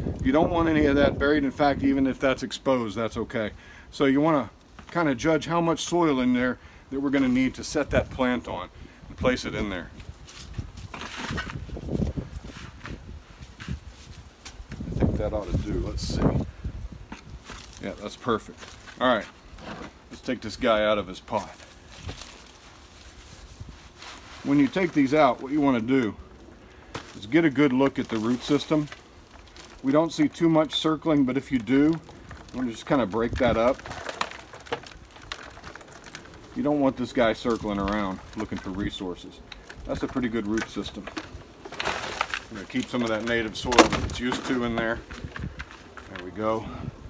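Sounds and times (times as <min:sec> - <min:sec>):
potting soil crumbling into pot: 0:04.2 - 0:26.2, 0:26.8 - 0:46.6
soft crackles and taps: 0:10.0 - 0:16.4, 0:17.0 - 0:19.4, 0:24.7 - 0:46.5
potting mix pouring: 0:26.8 - 0:46.6.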